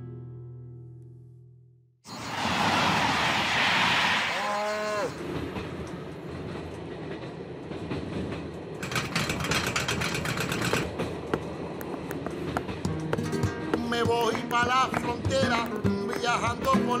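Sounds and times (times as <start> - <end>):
train rumble from inside carriage: 2.1 - 17.0
train rushing past: 2.1 - 17.0
rapid sharp clicks: 8.8 - 16.6.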